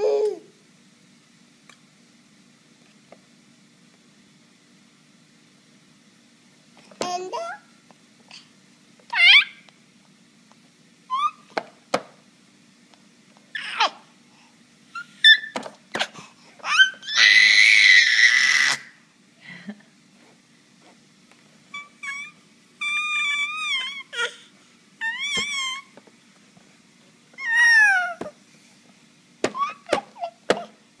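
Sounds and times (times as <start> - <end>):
baby squealing and babbling: 9.1 - 9.6, 11.1 - 11.5, 13.6 - 14.0, 16.6 - 18.9, 21.8 - 25.9, 27.4 - 28.3, 29.5 - 30.7.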